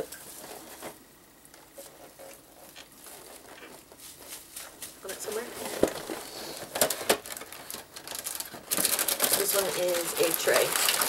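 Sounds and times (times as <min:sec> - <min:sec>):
packaging crinkling: 0:01.8 - 0:11.0.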